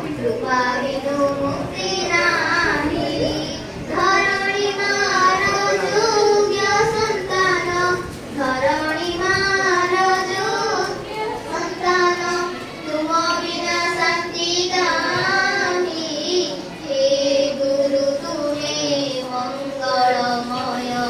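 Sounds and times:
girl singing slow song: 0.4s - 21.0s.

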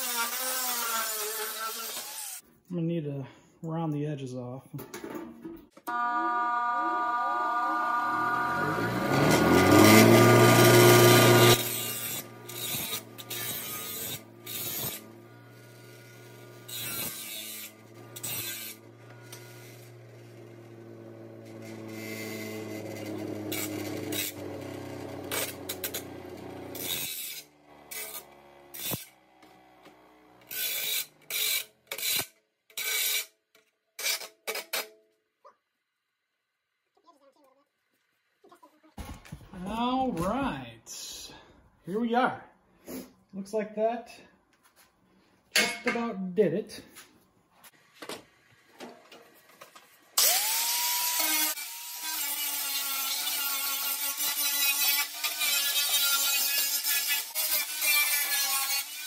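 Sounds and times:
bench grinder grinding steel: 0.0s - 2.4s, 5.9s - 33.3s, 50.2s - 59.0s
grinder motor hum winding down: 5.9s - 30.5s.

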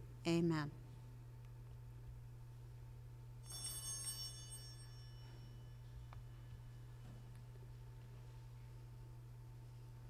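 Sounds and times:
low steady hum: 0.0s - 10.0s
small bell ringing: 3.4s - 5.9s.

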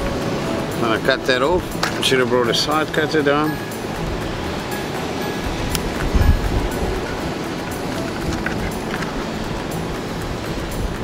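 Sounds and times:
faint background music: 0.0s - 11.0s
surf washing against rocks: 0.0s - 11.0s
wind on microphone: 3.9s - 11.0s.

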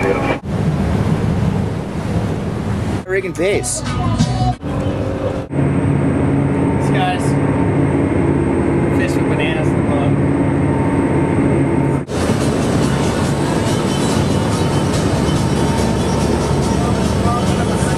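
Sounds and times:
low engine drone: 0.0s - 17.9s
rushing wind: 0.0s - 17.9s
churning water: 12.1s - 17.9s.

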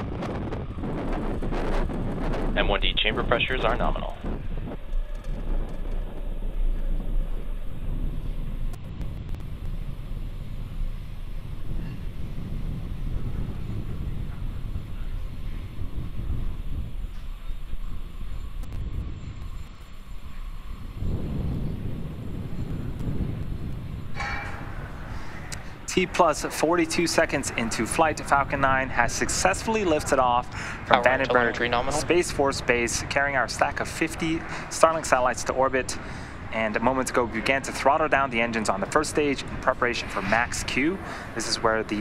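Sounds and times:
rocket engines rumbling and crackling: 0.0s - 42.0s
wind on microphone: 0.0s - 42.0s.

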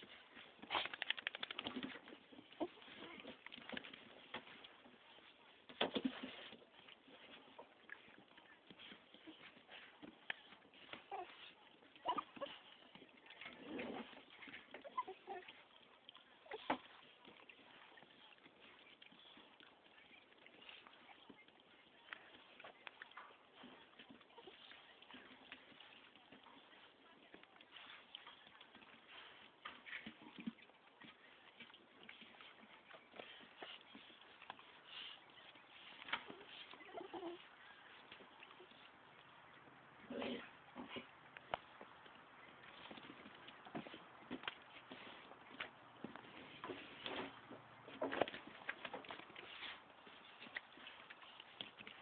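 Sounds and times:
puppies squeaking and whining: 0.0s - 5.3s, 6.0s - 21.5s, 22.1s - 26.9s, 27.7s - 39.6s.

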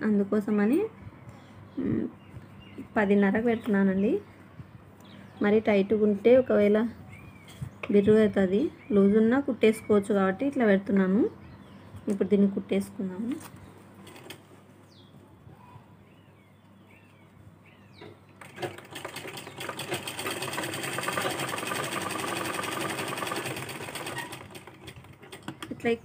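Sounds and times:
sewing machine stitching: 18.4s - 25.8s.

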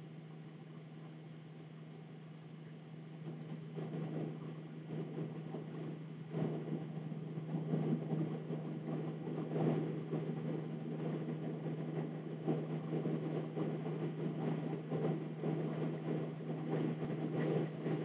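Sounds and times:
steady low hum: 0.0s - 18.0s.

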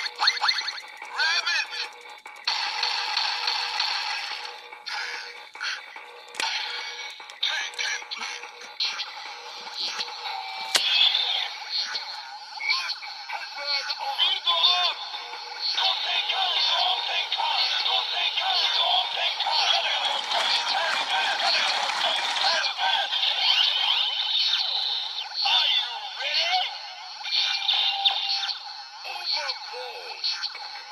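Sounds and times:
swooping synthetic toy tones: 0.0s - 1.9s
toy electronic music and voice jingle: 0.0s - 30.9s.

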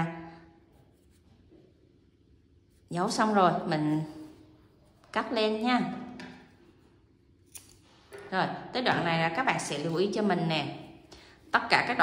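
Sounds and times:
scissors snipping yarn: 7.4s - 7.8s.

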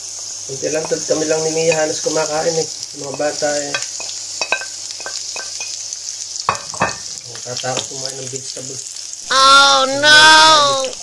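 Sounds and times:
vegetables sizzling in a frying pan: 0.0s - 11.0s.

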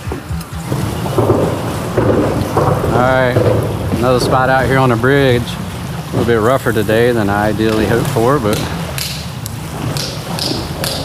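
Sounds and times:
choppy water around boat: 0.0s - 11.0s
wind rumble on microphone: 0.0s - 11.0s
sharp taps: 7.6s - 11.0s.

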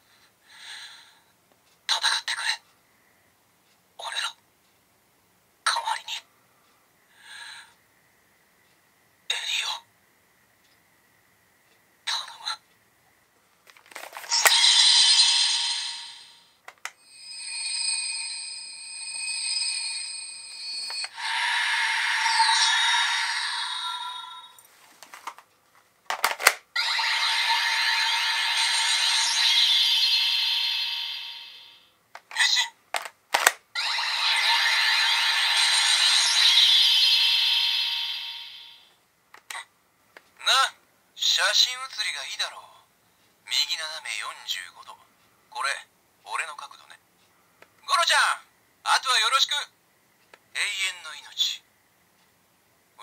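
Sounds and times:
electronic toy sound effects: 13.9s - 17.5s, 20.8s - 24.6s, 26.4s - 31.9s, 33.7s - 38.9s
steady ringing tones: 14.3s - 24.6s
long shimmering whooshes: 14.3s - 24.7s, 26.8s - 31.9s, 33.8s - 38.9s.

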